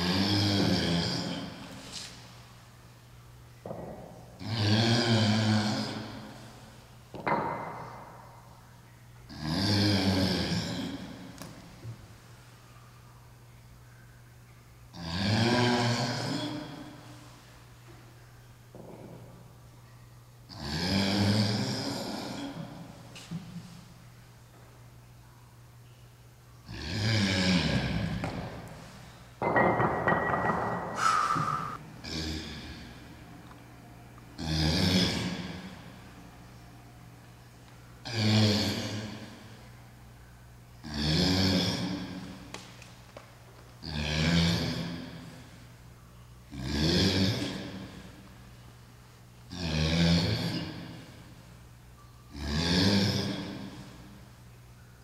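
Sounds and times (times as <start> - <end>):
steady low hum: 0.0 - 55.0
man breathing out forcefully: 30.9 - 31.8
man's rasping exhale of effort: 31.0 - 31.8.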